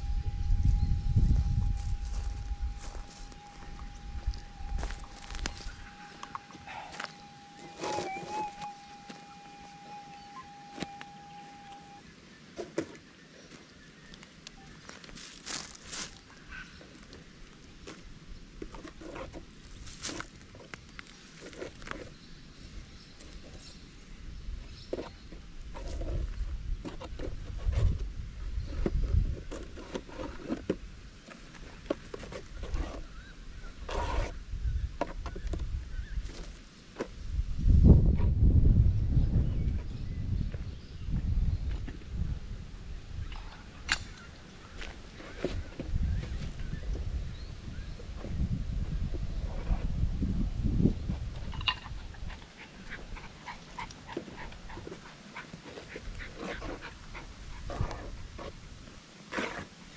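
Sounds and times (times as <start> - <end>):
metal detector electronic tone: 0.0 - 12.0
footsteps: 0.6 - 9.3
dry leaves crackling: 1.4 - 8.4, 14.8 - 18.0, 19.6 - 22.0.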